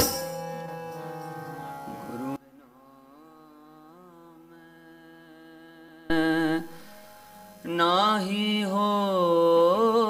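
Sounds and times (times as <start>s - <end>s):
harmonium: 0.0s - 2.4s
man singing devotional song: 0.0s - 7.0s, 7.6s - 10.0s.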